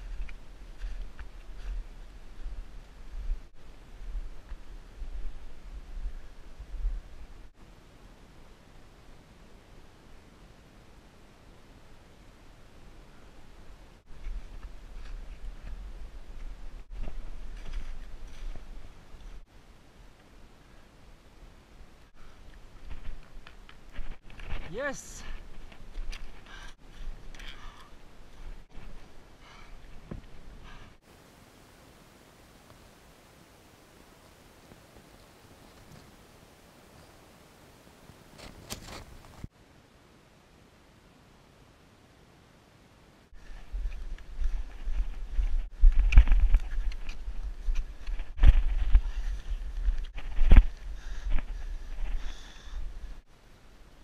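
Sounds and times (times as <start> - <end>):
trekking poles scraping in snow: 38.3 - 39.5.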